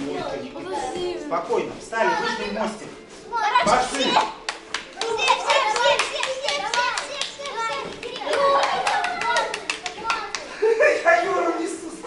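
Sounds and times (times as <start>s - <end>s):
children chattering and calling: 0.0s - 1.3s, 1.9s - 10.9s.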